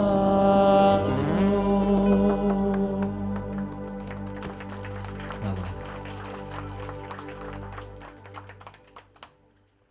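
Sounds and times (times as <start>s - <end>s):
audience applause: 3.0s - 9.5s.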